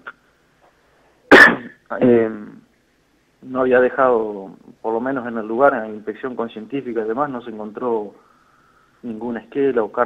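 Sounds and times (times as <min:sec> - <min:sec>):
person coughing: 0:01.3 - 0:02.2.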